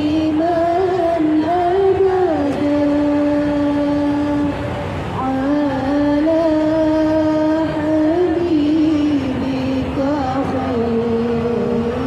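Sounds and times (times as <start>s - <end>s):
woman chanting into a microphone: 0.0s - 4.6s, 5.2s - 12.0s.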